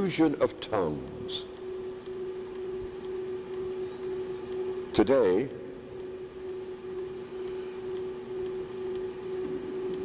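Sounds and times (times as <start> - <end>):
faint background hiss: 0.0 - 10.0
steady electrical hum: 0.0 - 10.0.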